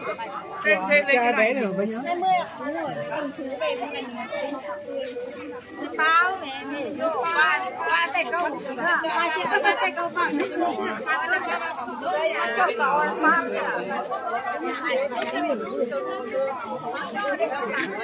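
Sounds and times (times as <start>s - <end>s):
crowd chatter: 0.0s - 18.0s.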